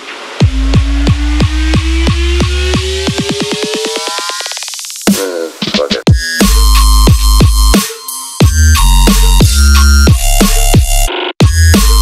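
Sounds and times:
drum roll speeding up: 0.0s - 12.0s
bass: 0.4s - 3.3s, 6.1s - 7.8s, 8.4s - 12.0s.

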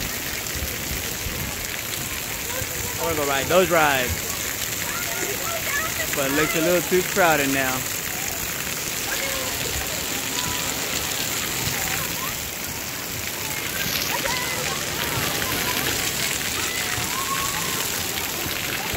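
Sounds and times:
water pouring and spraying: 0.0s - 18.9s
children's voices and shouts: 1.4s - 3.1s, 4.0s - 18.9s.

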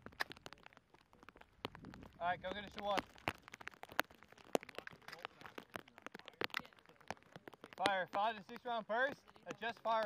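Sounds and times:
sharp clicks and ticks: 0.0s - 10.0s.

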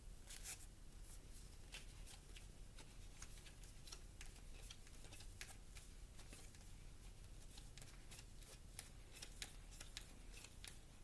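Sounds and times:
cards being shuffled: 0.3s - 0.7s, 1.6s - 10.9s.

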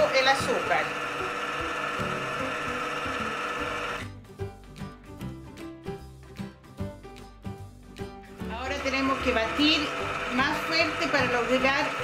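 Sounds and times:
stand mixer motor running: 0.0s - 4.1s, 8.8s - 12.0s.

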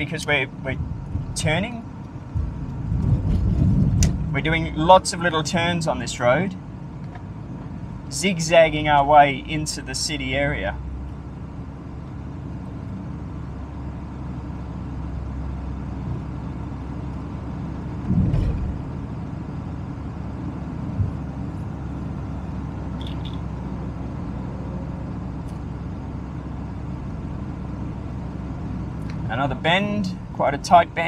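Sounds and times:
car driving on road: 0.0s - 31.0s
low thump: 18.0s - 19.0s.

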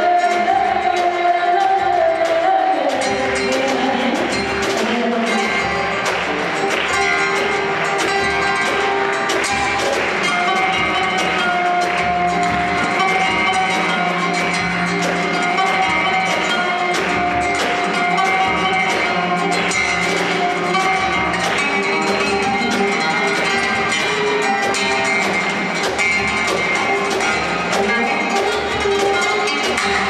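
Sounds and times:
live band music: 0.0s - 30.0s.

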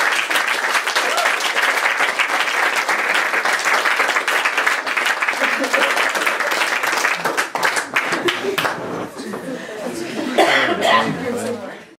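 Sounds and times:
small group applauding: 0.0s - 9.4s.

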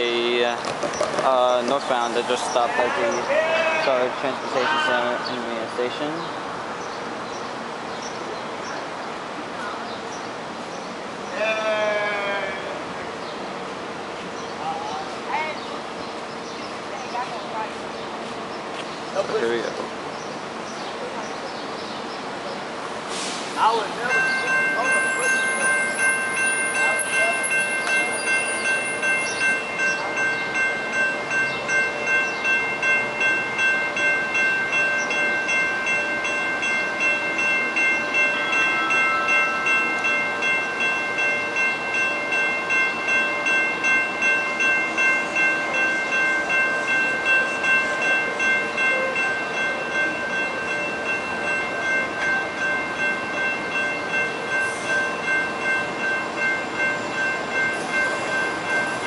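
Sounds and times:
railroad crossing bell ringing: 0.0s - 0.6s, 1.2s - 6.4s, 21.0s - 59.0s.

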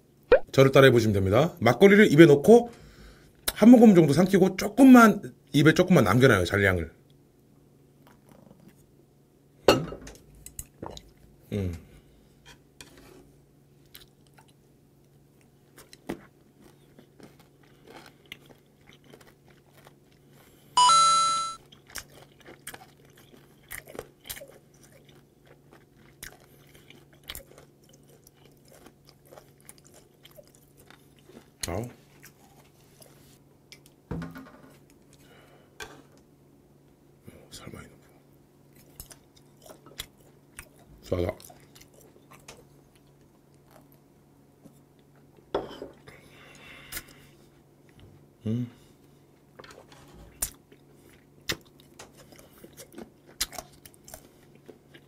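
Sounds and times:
faint steady hum: 0.0s - 55.0s
wet chewing with crunches: 13.8s - 20.8s, 21.6s - 34.0s, 38.7s - 44.1s, 49.4s - 55.0s
loud ringing tone: 20.8s - 21.6s.

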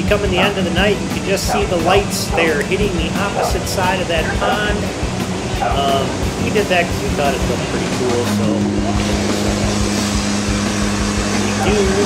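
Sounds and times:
diesel engine humming: 0.0s - 12.0s.

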